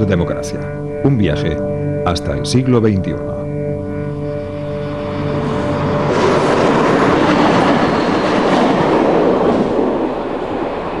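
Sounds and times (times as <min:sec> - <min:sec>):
train wheels rushing on rails: 0:05.4 - 0:11.0.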